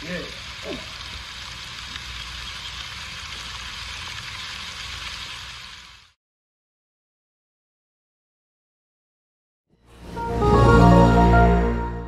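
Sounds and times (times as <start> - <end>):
steady hiss: 0.0 - 6.2.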